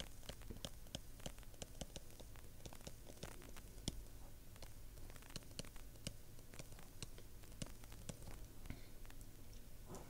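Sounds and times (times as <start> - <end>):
stylus tapping on tablet screen: 0.0 - 8.5.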